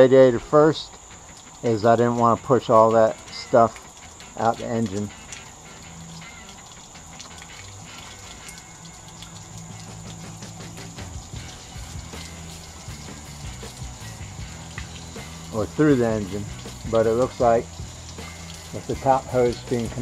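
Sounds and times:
background music: 0.0 - 20.0
water running through radiator: 0.0 - 20.0
water splashing on ground: 0.0 - 20.0.

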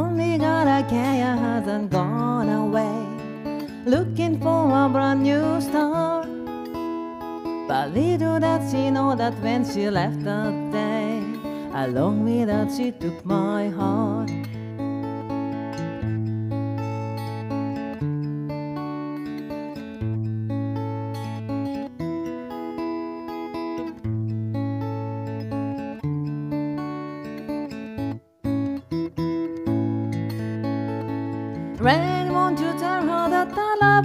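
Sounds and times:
acoustic guitar strumming: 0.0 - 34.0.

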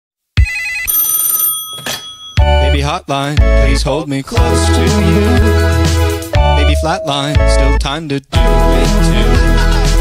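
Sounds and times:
telephone ringing: 0.4 - 2.8, 6.4 - 7.5.

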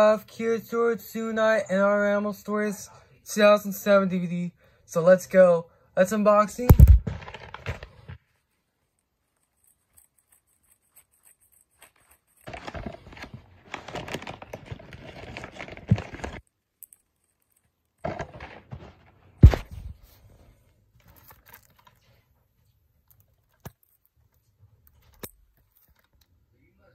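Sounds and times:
paper mailer tearing and crinkling: 6.6 - 8.2, 11.7 - 16.5, 18.0 - 19.9
paper rustle: 6.6 - 16.5, 18.0 - 20.4
sharp knock: 6.7 - 7.2
thud: 6.7 - 8.2, 18.0 - 20.1.

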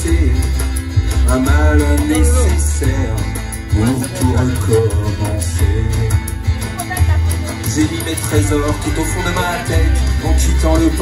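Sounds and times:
amplified acoustic guitar: 0.0 - 11.0
heavy bass line: 0.0 - 11.0
steady percussion: 0.0 - 11.0.

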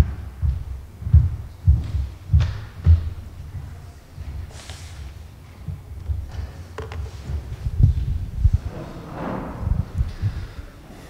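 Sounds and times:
heavy footsteps: 0.0 - 11.0.

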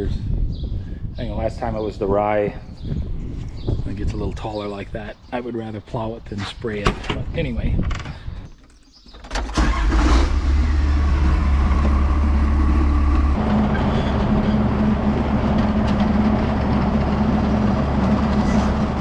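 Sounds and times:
tractor diesel engine starting: 9.3 - 19.0.

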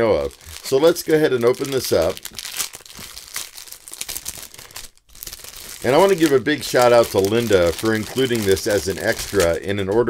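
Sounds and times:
plastic wrap crinkling: 0.0 - 10.0.

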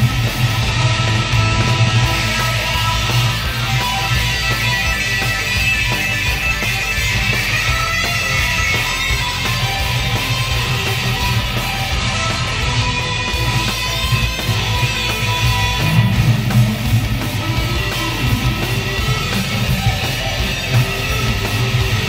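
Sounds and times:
electric guitar fast runs: 0.0 - 22.0
rock backing track: 0.0 - 22.0.

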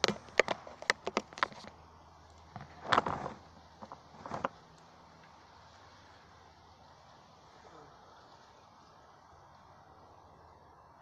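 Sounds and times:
rustle: 0.0 - 11.0.

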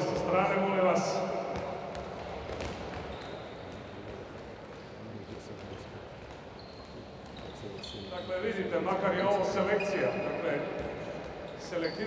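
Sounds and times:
balls bouncing on hall floor: 0.0 - 9.4, 10.4 - 12.0
sports hall background noise: 0.0 - 12.0.

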